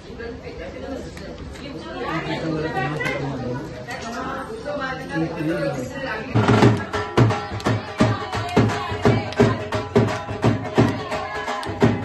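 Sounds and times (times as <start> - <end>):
people chatting: 0.0 - 7.0.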